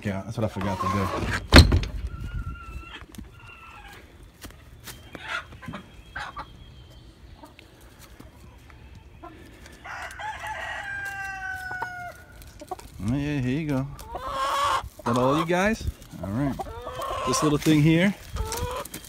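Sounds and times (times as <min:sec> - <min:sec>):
chickens clucking softly: 0:02.1 - 0:04.1, 0:05.0 - 0:13.1, 0:13.7 - 0:19.0
rooster crowing: 0:09.8 - 0:12.3.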